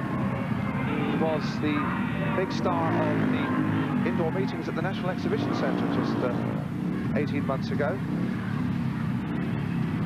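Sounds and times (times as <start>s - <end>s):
motorcycle engines droning: 0.0s - 10.0s.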